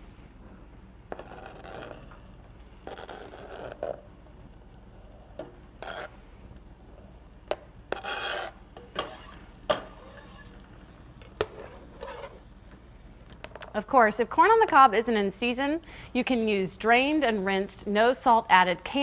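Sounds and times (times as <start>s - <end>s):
knife scraping cutting board: 1.1s - 2.2s, 5.8s - 6.1s, 7.9s - 10.6s, 11.5s - 12.4s
spoon stirring in metal pot: 7.5s - 10.6s.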